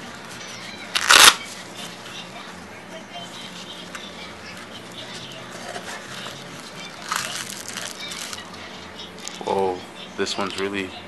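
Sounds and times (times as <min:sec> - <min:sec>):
hook-and-loop flap ripped open: 0:01.0 - 0:01.4.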